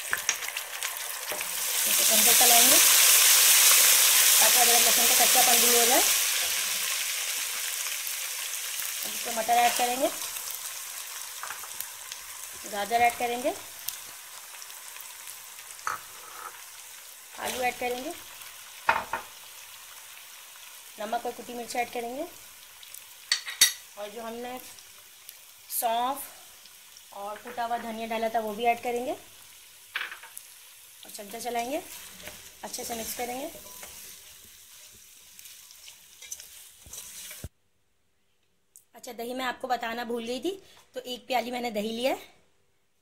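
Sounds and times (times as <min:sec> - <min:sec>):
vegetables sizzling in hot oil: 0:00.0 - 0:37.5
spoon scraping against pot: 0:15.8 - 0:16.6, 0:35.7 - 0:37.5.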